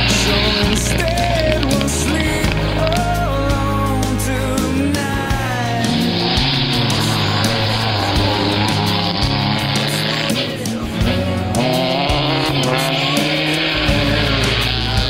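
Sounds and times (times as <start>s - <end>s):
rally car engine at speed: 0.0s - 15.0s
song with steady beat: 0.0s - 15.0s.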